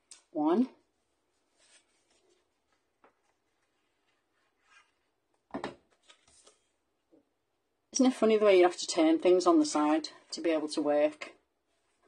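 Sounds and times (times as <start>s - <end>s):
card rustling: 5.8s - 6.8s.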